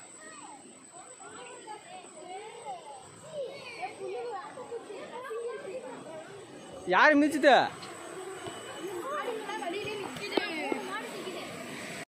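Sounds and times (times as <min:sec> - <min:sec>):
distant people chatting: 0:00.0 - 0:12.0.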